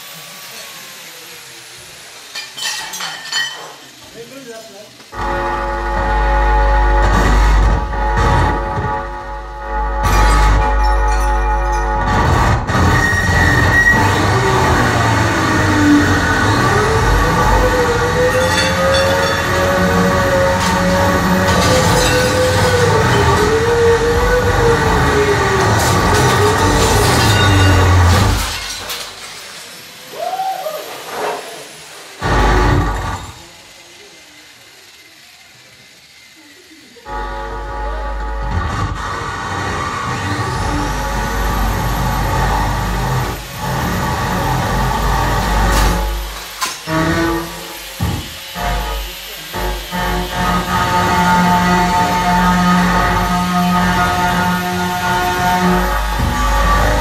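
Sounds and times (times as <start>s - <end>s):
angle grinder: 0.0s - 57.0s
crockery smashing: 2.4s - 3.8s, 10.0s - 12.1s, 25.8s - 29.9s.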